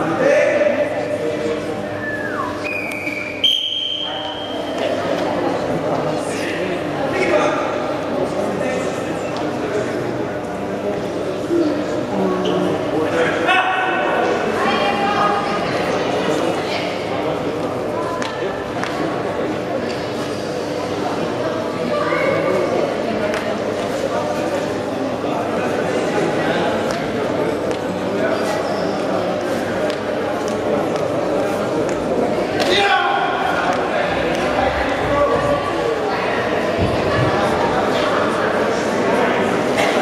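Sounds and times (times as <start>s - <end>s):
spectators talking: 0.0s - 40.0s
referee's whistle blasts: 2.1s - 4.6s.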